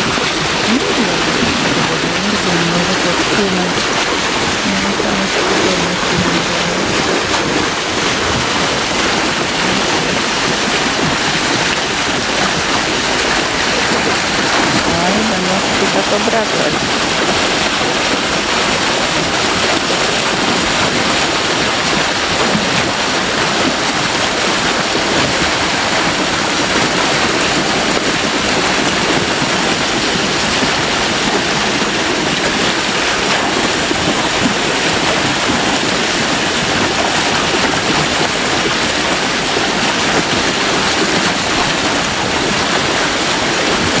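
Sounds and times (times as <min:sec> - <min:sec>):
water pouring over a weir: 0:00.0 - 0:44.0.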